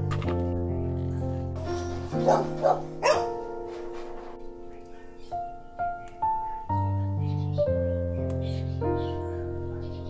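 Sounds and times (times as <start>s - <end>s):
held keyboard notes: 0.0s - 10.0s
dog barking: 2.2s - 3.5s.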